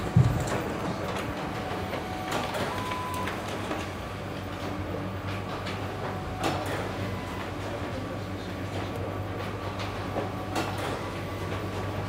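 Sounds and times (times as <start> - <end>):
printer motor hum: 0.0 - 12.0.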